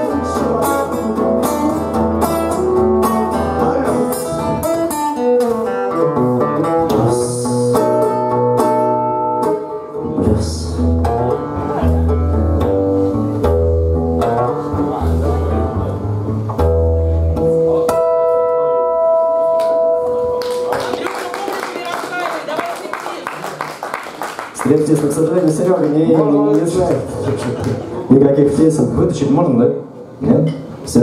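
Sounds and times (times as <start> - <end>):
acoustic guitar blues playing: 0.0 - 20.7.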